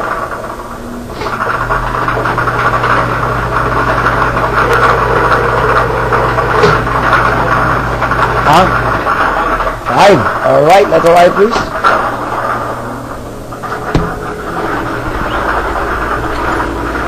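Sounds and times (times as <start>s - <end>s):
motor hum: 0.0s - 10.4s, 11.3s - 17.0s.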